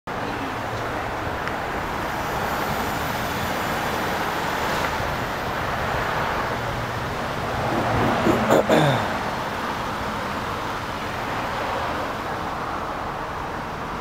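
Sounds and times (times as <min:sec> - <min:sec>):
road traffic hiss: 0:00.1 - 0:14.0.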